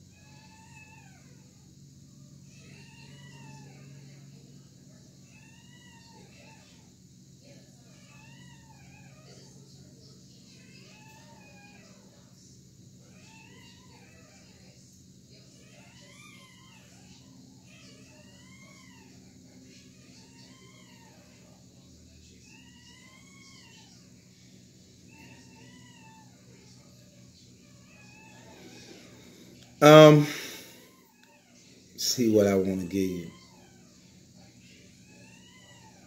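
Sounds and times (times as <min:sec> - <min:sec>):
cat meowing faintly: 0:02.2 - 0:36.0.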